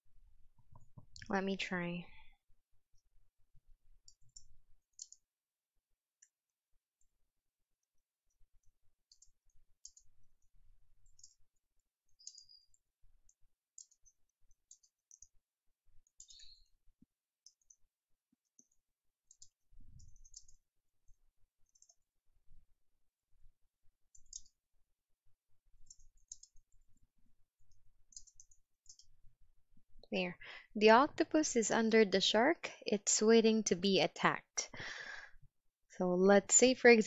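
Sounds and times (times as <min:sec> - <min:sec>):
typing on computer keyboard: 0:11.0 - 0:15.4, 0:18.4 - 0:20.6, 0:21.6 - 0:22.0, 0:24.1 - 0:24.6, 0:25.8 - 0:26.9, 0:28.1 - 0:29.1.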